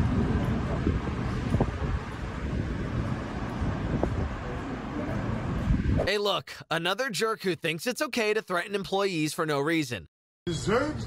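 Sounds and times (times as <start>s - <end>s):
wind rumbling on microphone: 0.0s - 6.1s.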